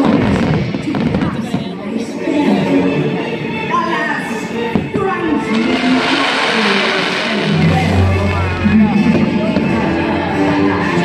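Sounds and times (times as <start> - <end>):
fireworks hissing and crackling: 5.4 - 10.0
soundtrack music: 5.5 - 11.0.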